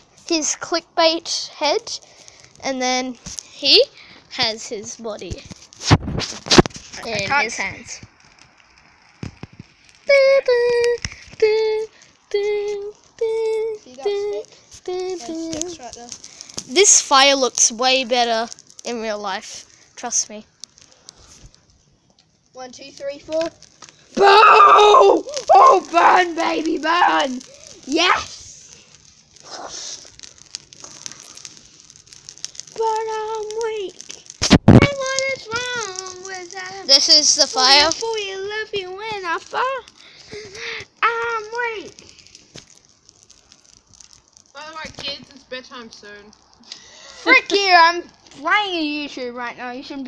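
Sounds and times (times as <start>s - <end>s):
fire crackling: 0.0s - 50.0s
child singing: 10.1s - 15.7s.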